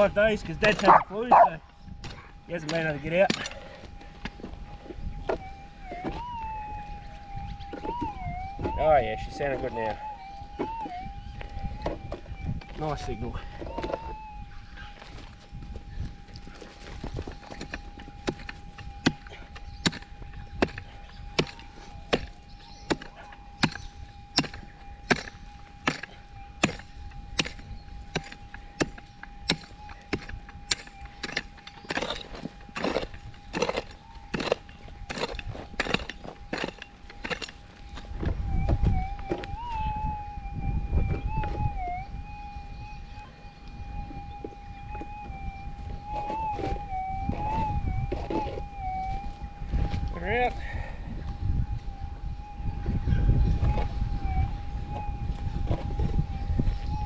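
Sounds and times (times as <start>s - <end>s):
metal detector hum: 0.0s - 1.6s
metal detector tone wavering: 0.0s - 57.0s.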